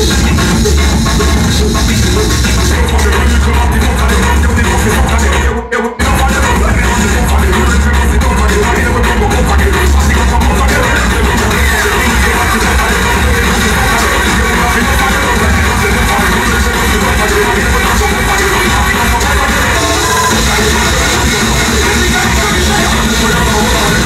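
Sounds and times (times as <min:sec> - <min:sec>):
loud electronic music with heavy bass: 0:00.0 - 0:24.0.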